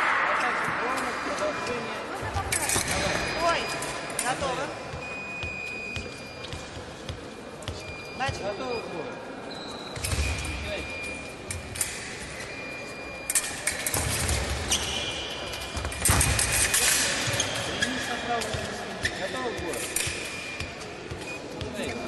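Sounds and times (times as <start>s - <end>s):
rubber soles squeaking: 3.4s - 8.9s, 14.1s - 22.0s.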